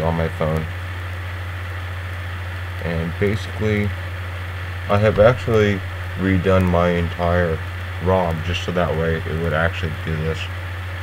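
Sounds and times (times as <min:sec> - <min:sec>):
faint hiss: 0:00.0 - 0:11.0
steady low hum: 0:00.0 - 0:11.0
person speaking: 0:04.9 - 0:10.5.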